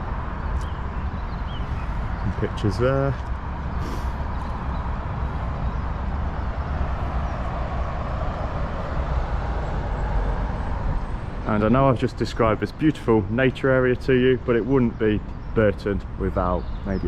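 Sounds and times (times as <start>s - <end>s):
outdoor background rumble: 0.0s - 17.0s.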